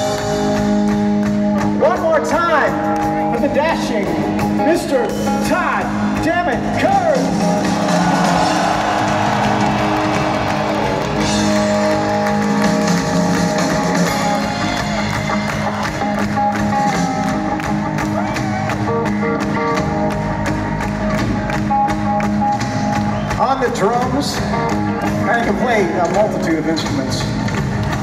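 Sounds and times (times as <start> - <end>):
electric guitar and bass: 0.0 - 28.0.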